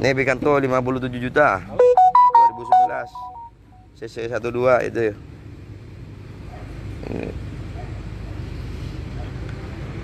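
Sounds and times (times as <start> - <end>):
low rumble of vehicle noise: 0.0 - 10.0.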